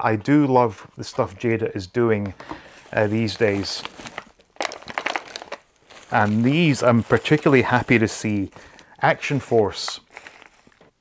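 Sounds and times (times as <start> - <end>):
paper packaging crinkling: 2.4 - 11.0.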